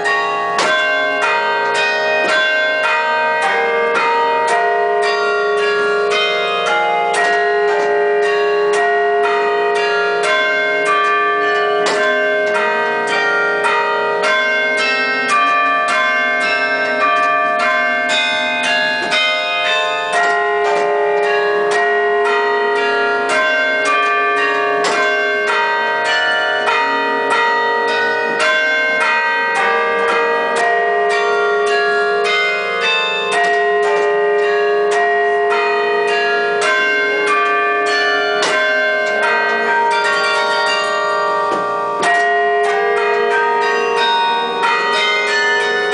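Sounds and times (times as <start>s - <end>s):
carillon bells ringing: 0.0s - 45.9s
low bell tone: 0.0s - 45.9s.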